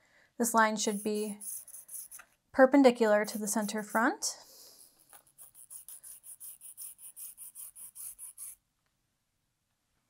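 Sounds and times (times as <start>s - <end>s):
marker scratching on fabric: 0.8s - 2.3s, 3.0s - 8.6s.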